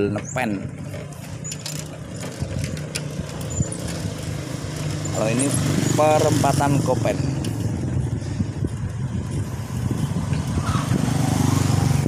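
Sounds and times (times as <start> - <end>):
road and wind noise: 0.0 - 12.0
vehicle engine drone: 0.0 - 12.0.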